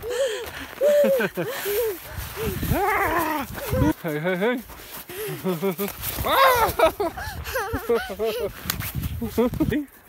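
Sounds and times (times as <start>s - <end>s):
woman laughing hard: 0.7s - 2.0s, 5.3s - 8.6s
wind on microphone: 2.0s - 4.0s, 6.1s - 9.8s.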